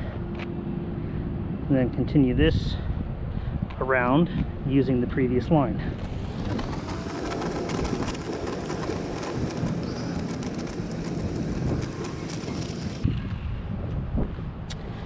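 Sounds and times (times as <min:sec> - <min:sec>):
chalk scraping on hard ground: 0:06.4 - 0:13.0.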